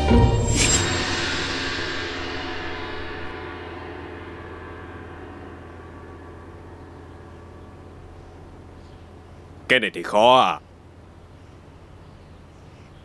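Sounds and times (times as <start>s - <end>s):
gong ringing: 0.0s - 9.7s.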